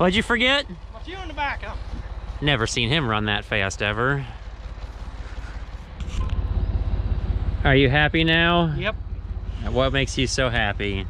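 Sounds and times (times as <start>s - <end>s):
tractor engine running: 0.0s - 11.0s.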